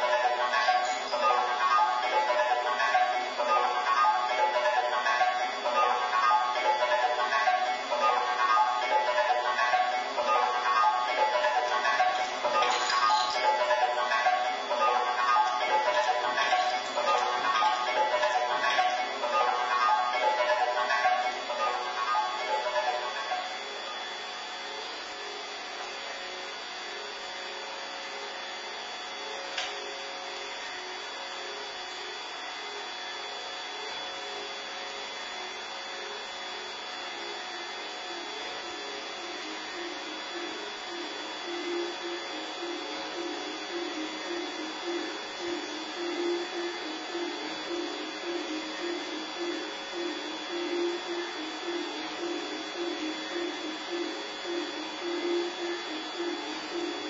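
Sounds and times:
held electronic tones: 0.0s - 24.1s, 38.2s - 57.0s
rapidly pulsing low tone: 0.0s - 24.4s, 37.6s - 57.0s
hissing electronic drone: 0.0s - 27.1s, 34.2s - 57.0s.

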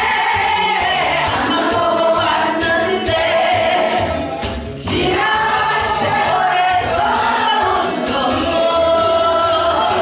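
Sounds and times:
woman singing into a microphone: 0.0s - 4.1s, 4.8s - 10.0s
accompaniment track with steady beat: 0.0s - 10.0s
group singing along: 0.0s - 10.0s.

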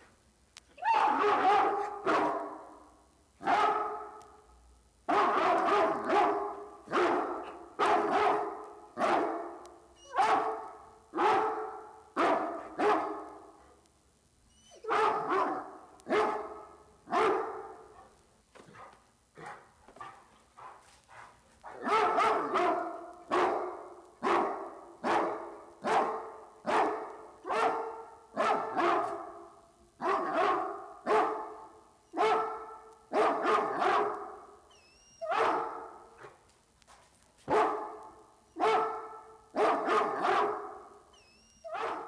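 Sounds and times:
dogs barking: 0.9s - 2.8s, 3.4s - 4.3s, 5.1s - 13.5s, 14.6s - 29.4s, 30.0s - 34.6s, 35.2s - 36.4s, 37.5s - 41.0s, 41.7s - 42.0s.

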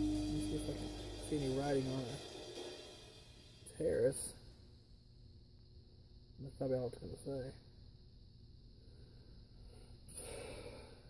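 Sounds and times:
short breathy hiss: 9.7s - 11.0s.

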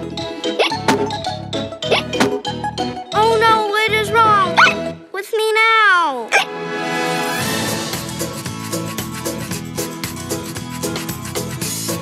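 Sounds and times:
girl's cartoon voice: 3.2s - 6.5s.

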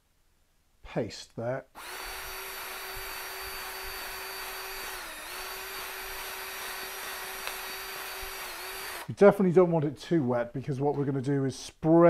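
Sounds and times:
drill paddle mixer whining: 1.8s - 9.1s.

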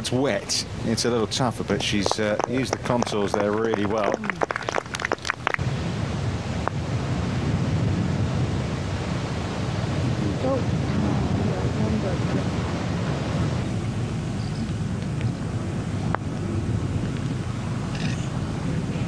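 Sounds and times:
low wind rumble: 0.0s - 19.0s.

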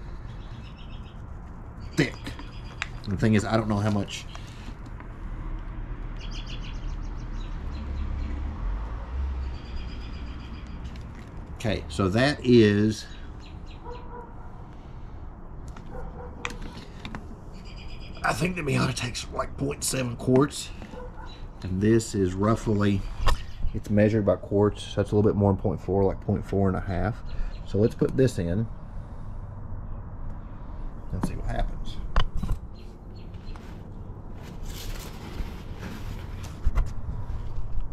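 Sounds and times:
small birds chirping: 0.0s - 5.1s, 6.0s - 8.5s, 9.4s - 14.5s, 15.9s - 25.4s, 26.0s - 33.9s.

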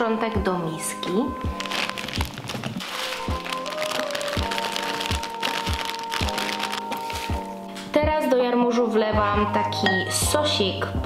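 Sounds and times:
background music with steady beat: 0.0s - 11.0s
plastic bag crinkling: 1.4s - 7.5s
kale leaves rustling: 1.5s - 7.5s.

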